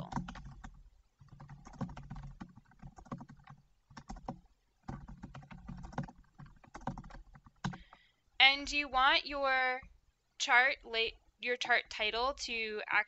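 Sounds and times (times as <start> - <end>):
computer keyboard typing: 0.0 - 8.8.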